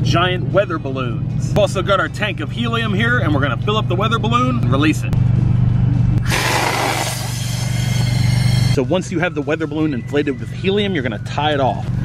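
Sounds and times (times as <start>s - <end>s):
gas hissing from valve: 6.2s - 8.8s
background music: 8.6s - 12.0s.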